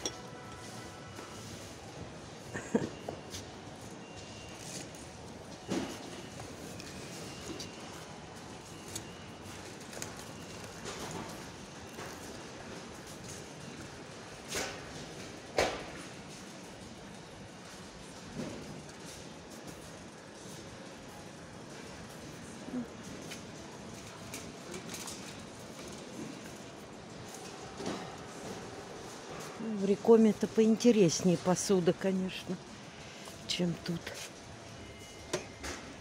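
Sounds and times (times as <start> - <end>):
supermarket background noise: 0.0 - 36.0.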